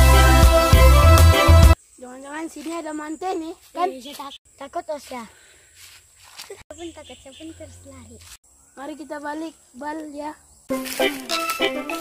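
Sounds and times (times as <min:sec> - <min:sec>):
loud music: 0:00.0 - 0:01.8
child's voice: 0:02.0 - 0:05.4, 0:06.4 - 0:10.4.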